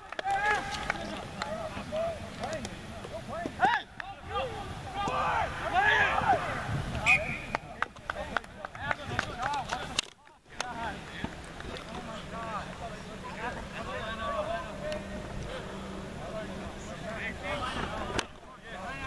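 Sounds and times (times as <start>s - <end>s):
people talking and calling out: 0.0s - 19.0s.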